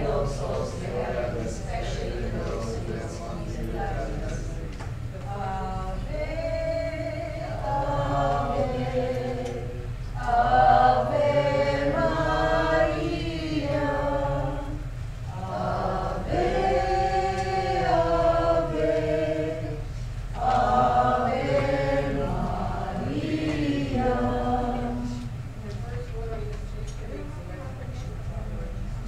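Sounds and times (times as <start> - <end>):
congregation singing in unison: 0.0 - 4.6, 5.3 - 25.6
steady low hum: 0.0 - 29.0.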